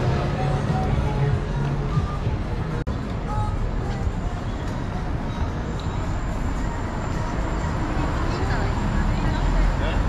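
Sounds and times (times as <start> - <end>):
traffic rumble: 0.0 - 10.0.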